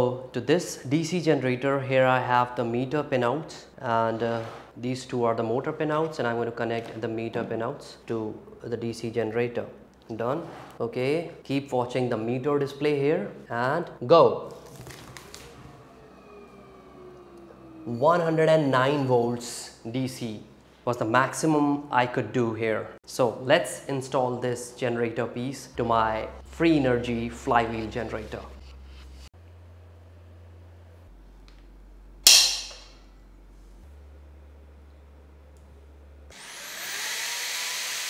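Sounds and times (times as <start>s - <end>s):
motor whine falling in pitch: 14.6s - 19.8s
centre punch snapping on metal: 32.3s - 33.0s.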